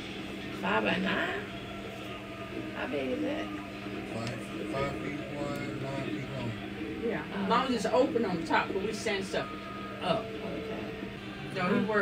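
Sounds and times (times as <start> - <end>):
indistinct voices from television: 0.0 - 12.0
low steady hum: 0.0 - 12.0.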